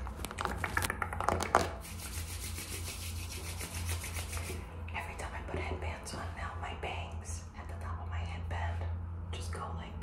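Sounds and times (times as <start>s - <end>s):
steady low hum: 0.0s - 10.0s
woman whispering: 4.9s - 10.0s.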